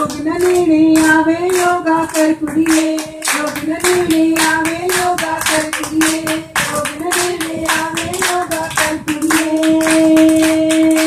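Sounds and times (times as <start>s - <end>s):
women clapping in rhythm: 0.0s - 11.0s
women singing a held note: 7.2s - 11.0s.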